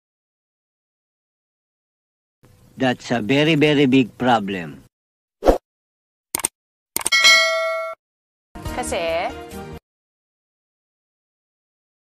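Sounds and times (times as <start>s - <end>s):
quick clicks: 6.4s - 7.2s
bright metallic ding: 7.1s - 8.0s.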